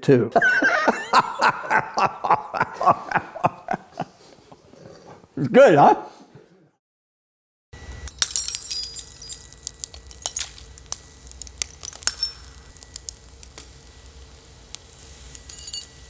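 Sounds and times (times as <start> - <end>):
wine glasses cracking and shattering: 8.1 - 16.0.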